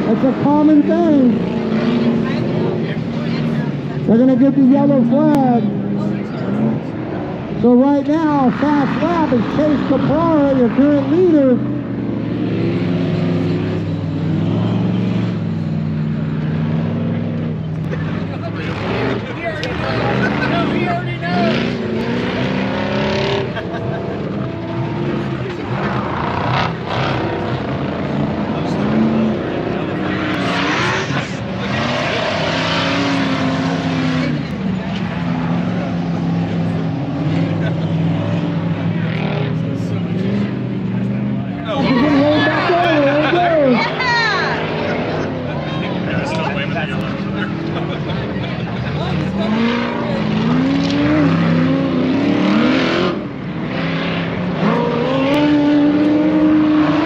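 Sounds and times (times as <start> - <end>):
race vehicle engines revving: 0.0 - 57.0.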